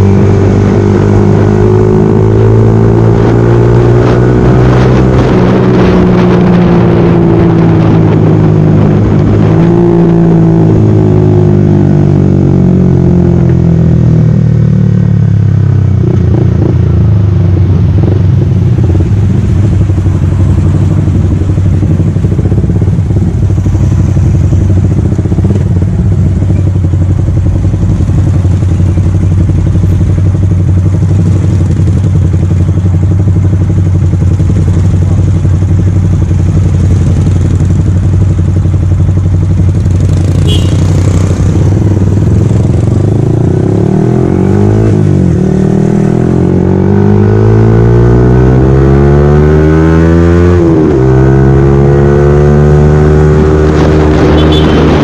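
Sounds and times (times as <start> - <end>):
motorcycle engine slowing and idling: 0.0 - 55.0.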